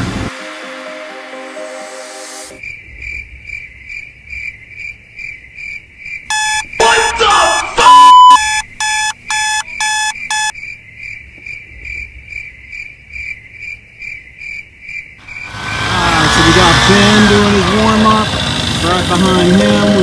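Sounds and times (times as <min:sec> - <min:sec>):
crickets chirping: 0:02.6 - 0:15.5
alarm clock beeping: 0:06.3 - 0:10.5.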